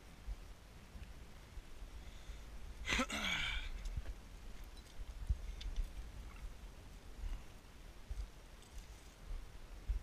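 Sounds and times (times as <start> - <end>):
person sighing: 2.8 - 3.8.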